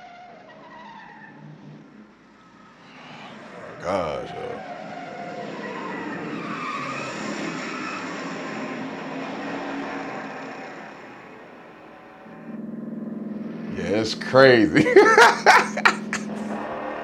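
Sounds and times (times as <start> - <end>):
car engines revving: 0.0 - 17.0
tyres skidding: 0.0 - 17.0
low engine drone: 11.2 - 17.0.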